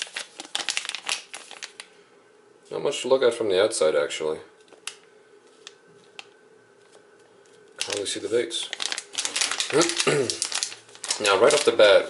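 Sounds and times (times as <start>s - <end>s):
plastic bag crinkling: 0.0s - 1.9s, 7.8s - 12.0s.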